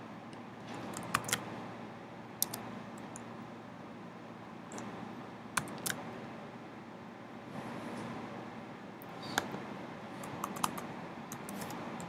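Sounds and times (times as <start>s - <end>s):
keyboard keystrokes: 0.8s - 1.4s, 2.4s - 3.2s, 5.6s - 6.0s, 10.2s - 11.8s.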